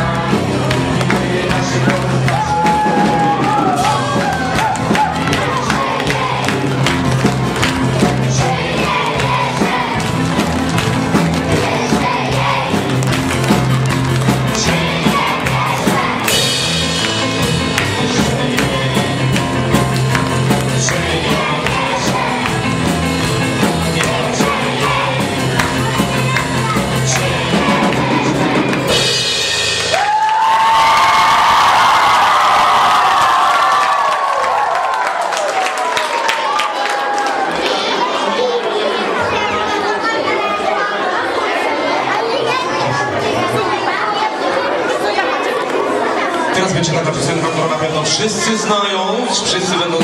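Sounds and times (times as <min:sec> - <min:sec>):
live pop-rock band playing: 0:00.0 - 0:30.8
audience clapping along: 0:00.1 - 0:29.0, 0:29.7 - 0:39.0.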